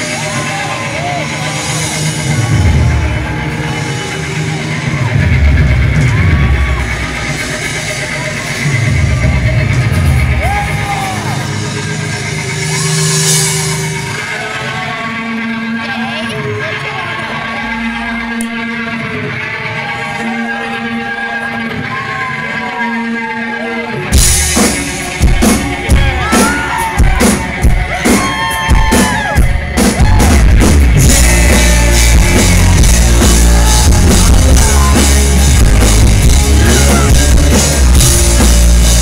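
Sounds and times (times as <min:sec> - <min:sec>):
heavy bass swells: 0:00.0 - 0:16.0, 0:29.8 - 0:39.0
electric guitar notes bending: 0:29.8 - 0:39.0.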